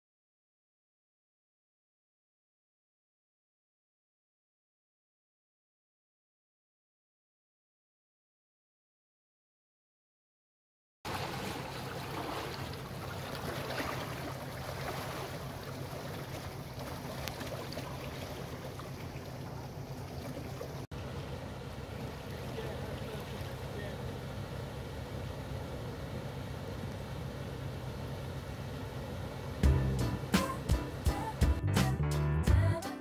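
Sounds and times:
water churning: 11.1 - 31.5
boat engine running: 11.1 - 32.0.

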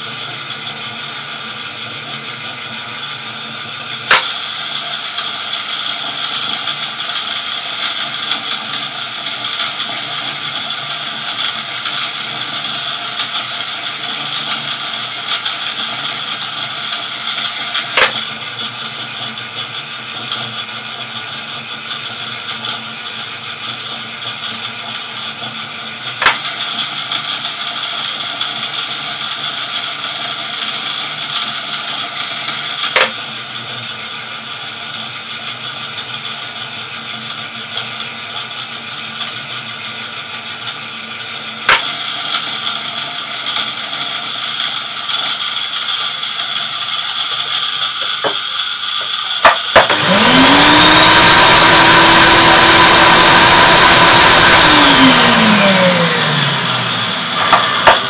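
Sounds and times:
vacuum motor rushing and whining: 26.2 - 31.0, 31.9 - 33.2, 41.7 - 58.0
machine drive whining: 47.2 - 58.0.

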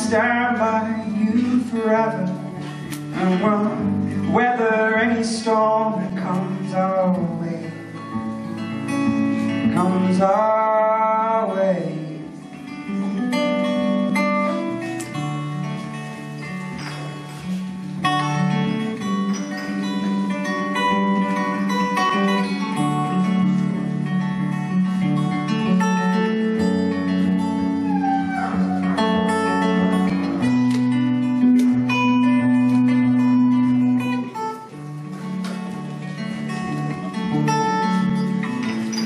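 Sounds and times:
acoustic guitar playing: 0.0 - 39.0.

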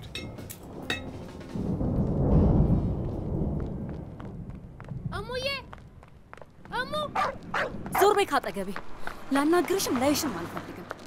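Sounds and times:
deep rumble: 0.6 - 8.0.

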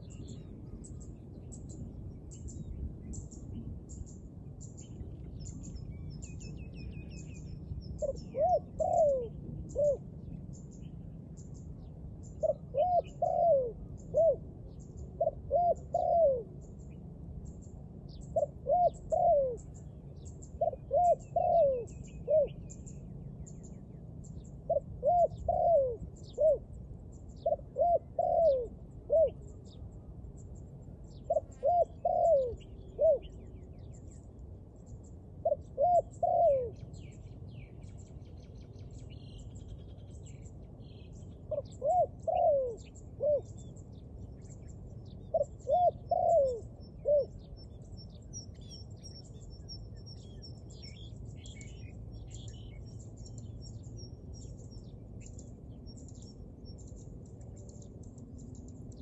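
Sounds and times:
dove cooing: 7.9 - 10.5, 12.2 - 16.7, 18.1 - 22.8, 24.6 - 29.8, 31.2 - 33.5, 35.4 - 37.2, 41.5 - 43.7, 45.2 - 47.5.

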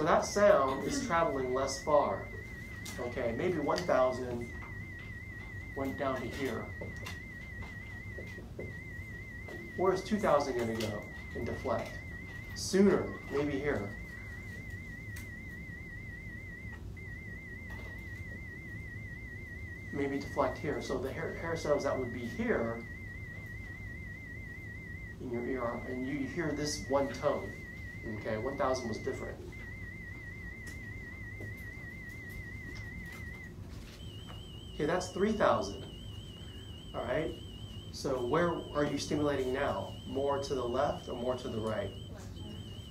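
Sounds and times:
pure test tone: 0.0 - 42.9.

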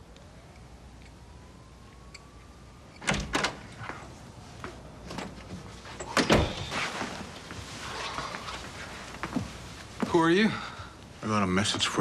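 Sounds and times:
door clicks: 3.0 - 3.6.

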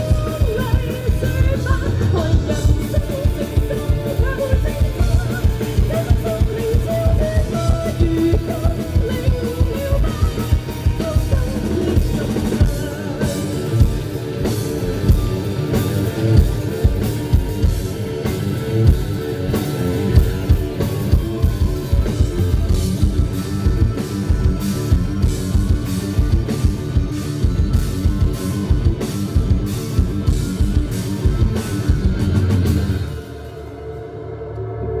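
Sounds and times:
woman singing: 0.0 - 13.9
live rock band playing: 0.0 - 35.0.

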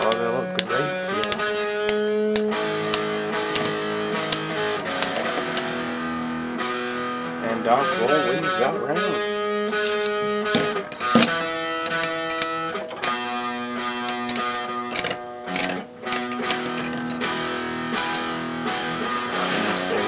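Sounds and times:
guitar background music: 0.0 - 20.0
spinning tops clicking together: 9.7 - 13.3, 13.9 - 18.4.

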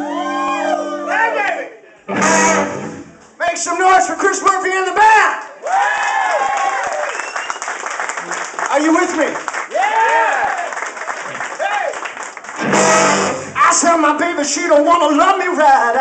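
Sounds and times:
lead instrument bending notes: 2.1 - 3.2, 12.6 - 13.6
blues band playing: 2.1 - 3.8, 12.4 - 14.8
audience clapping and cheering: 5.4 - 13.4.

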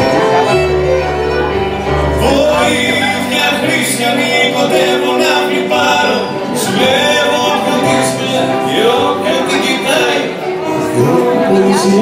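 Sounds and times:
accordion: 0.0 - 12.0
man singing into a microphone: 2.0 - 12.0.

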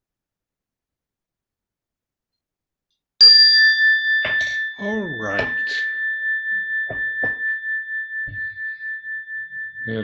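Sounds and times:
meditation bell ringing: 3.2 - 10.0.

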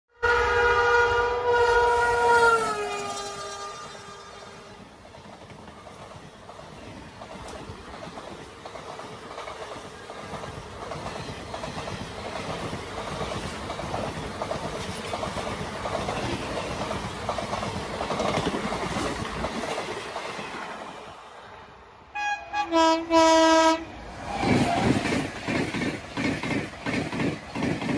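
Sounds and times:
train horn: 0.1 - 4.8, 22.1 - 24.6
train wheels clattering over rail joints: 5.0 - 20.5, 24.4 - 27.9.

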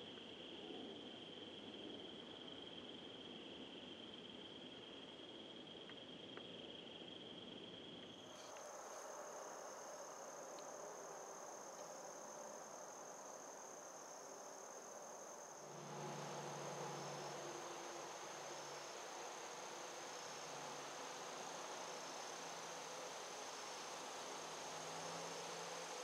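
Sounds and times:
insects trilling: 0.0 - 26.0
faint low hum: 7.7 - 26.0.

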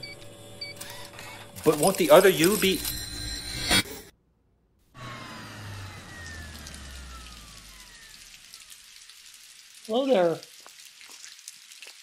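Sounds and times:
low rumble with whistling tones: 5.0 - 8.7
steady rainfall: 6.3 - 12.0.

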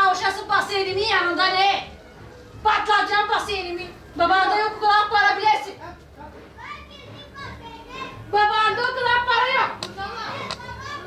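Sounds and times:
children chattering and calling out: 6.4 - 11.0.

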